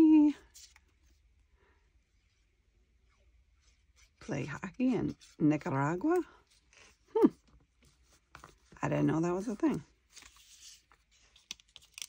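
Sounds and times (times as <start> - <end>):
paper stamps rustling and clicking: 10.2 - 12.0.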